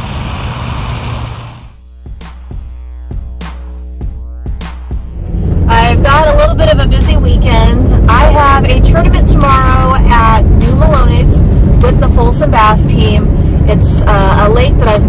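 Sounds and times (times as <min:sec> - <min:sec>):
car cabin road rumble: 0:04.4 - 0:15.0
woman talking: 0:05.7 - 0:15.0.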